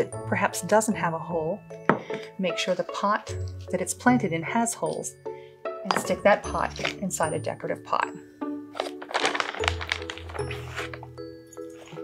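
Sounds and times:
background music: 0.0 - 12.0
plastic bag rustling: 8.7 - 12.0.

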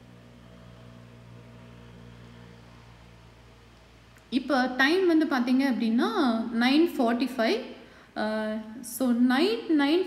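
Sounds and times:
light background noise: 0.0 - 10.0.

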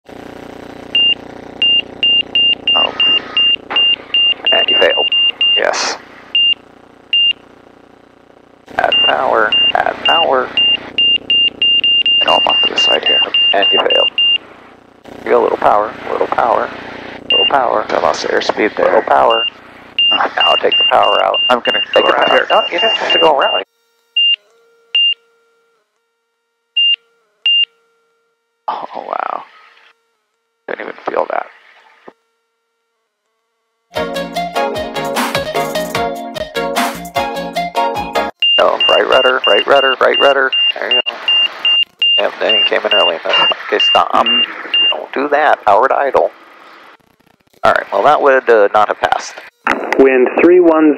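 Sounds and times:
stall warning beeps: 1.0 - 5.8, 6.4 - 6.6, 7.2 - 7.4, 8.8 - 14.4, 17.3 - 17.7, 18.9 - 23.6, 25.0 - 25.2, 26.8 - 27.7, 38.4 - 45.3.

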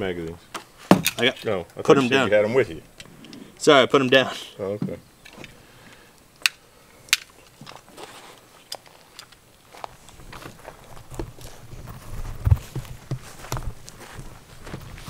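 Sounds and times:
footsteps through grass: 7.8 - 15.0
thumps and rumble of carried camera: 10.1 - 15.0.

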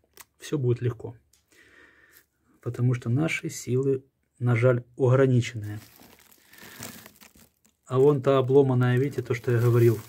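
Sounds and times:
faint crinkling rustle: 5.5 - 10.0.

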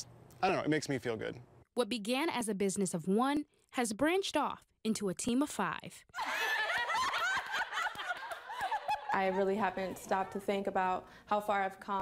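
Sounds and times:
women laughing: 6.2 - 10.0
hand claps: 7.2 - 9.2.

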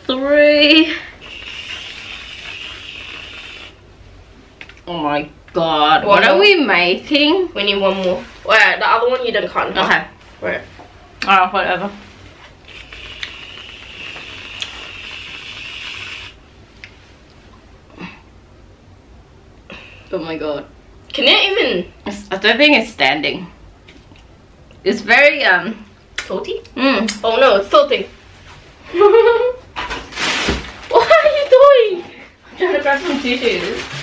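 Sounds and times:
aerosol can spraying hiss: 1.2 - 3.8, 12.6 - 16.4.

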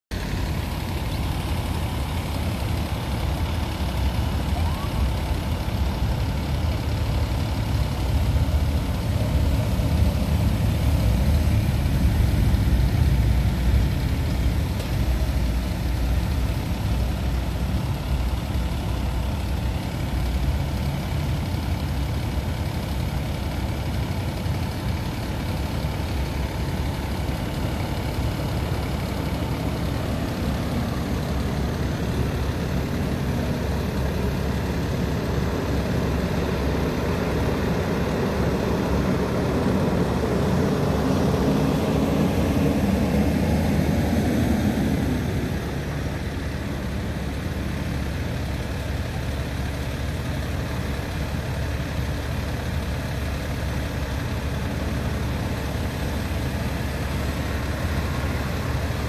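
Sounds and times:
low rumble of vehicle engines: 0.1 - 59.0.

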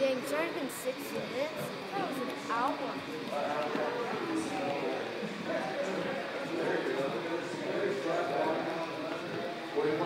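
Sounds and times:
indistinct voices talking: 0.0 - 10.0
murmur of people: 0.0 - 10.0.

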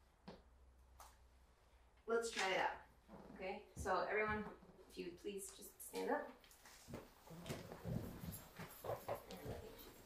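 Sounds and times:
chairs shifting and creaking: 6.7 - 10.0.

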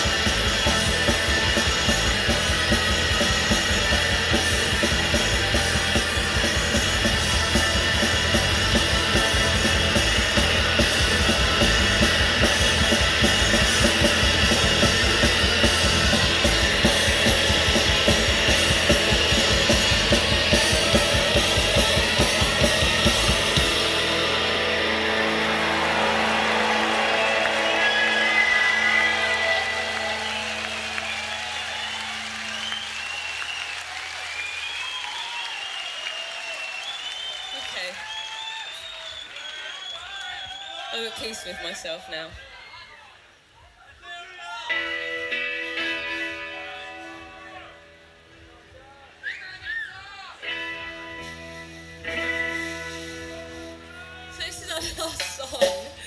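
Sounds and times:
distorted guitar chords: 0.0 - 31.4, 44.7 - 48.5, 50.4 - 54.8
bass guitar: 0.0 - 33.2, 44.7 - 48.6, 50.4 - 56.0
drums: 0.0 - 56.0
voices: 39.4 - 45.0.

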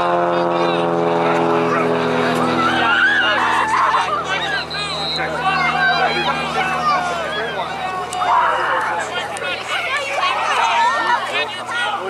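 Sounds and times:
motor running: 0.0 - 12.0
voices shouting: 0.6 - 12.0.

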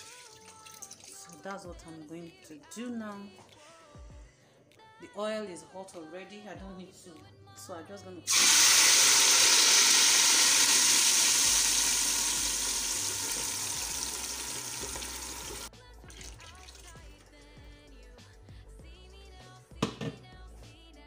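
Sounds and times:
quiet background music: 0.0 - 9.0, 9.6 - 21.0
tomato puree sizzling in hot oil: 8.3 - 15.7
knock: 19.8 - 20.2.

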